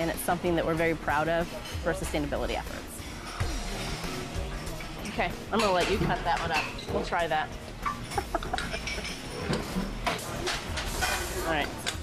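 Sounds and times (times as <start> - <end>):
utensils and dishes clattering: 0.0 - 12.0.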